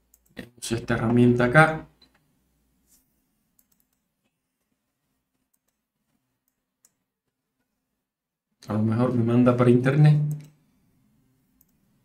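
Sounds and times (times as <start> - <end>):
computer mouse clicks: 3.6 - 4.7, 5.3 - 5.8, 6.4 - 7.7, 10.3 - 10.6, 11.6 - 11.8.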